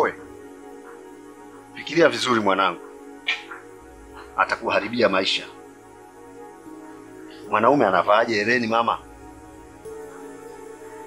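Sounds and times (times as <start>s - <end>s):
soft music of held notes: 0.0s - 11.0s.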